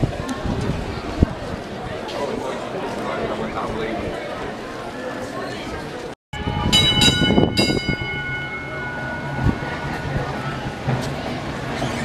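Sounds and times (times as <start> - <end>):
tram bell ringing: 6.4 - 12.0
tram rumbling on rails: 6.4 - 12.0.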